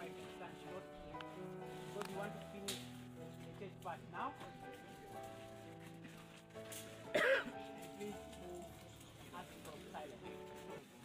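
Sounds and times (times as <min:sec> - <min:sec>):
soft background music: 0:00.0 - 0:11.0
person coughing: 0:07.1 - 0:07.6.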